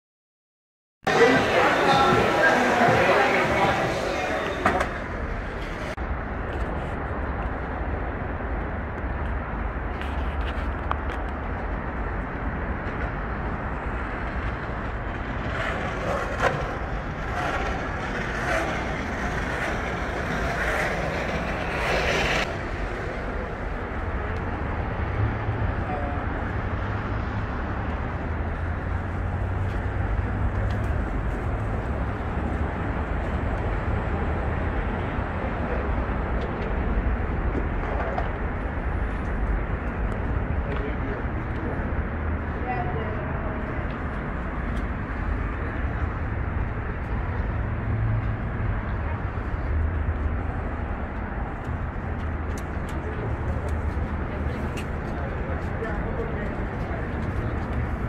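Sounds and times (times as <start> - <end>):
city traffic rumble: 1.0 - 58.0.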